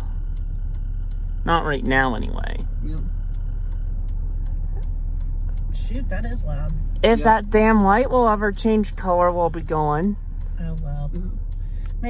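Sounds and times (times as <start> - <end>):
car engine idling: 0.0 - 12.0
faint regular ticks: 0.0 - 12.0.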